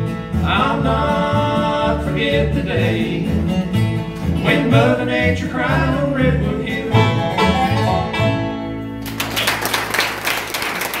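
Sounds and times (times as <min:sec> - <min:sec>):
bluegrass band playing: 0:00.0 - 0:09.9
applause: 0:09.0 - 0:11.0.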